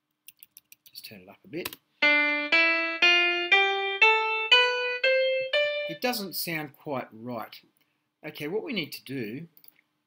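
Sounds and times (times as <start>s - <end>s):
piano playing rising scale: 2.0s - 6.3s.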